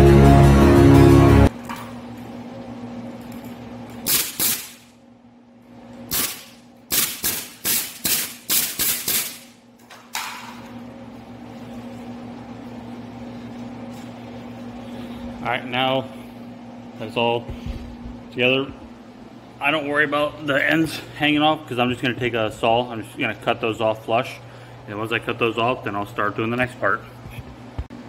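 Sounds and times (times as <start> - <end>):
pneumatic stapler firing into wood: 4.1 - 4.8, 6.1 - 9.5.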